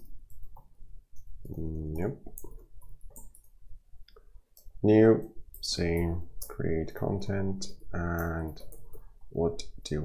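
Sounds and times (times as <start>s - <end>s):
computer keyboard keys clicking: 0.0s - 3.6s, 7.7s - 9.0s
man speaking: 1.4s - 2.3s, 4.8s - 8.7s, 9.3s - 10.0s.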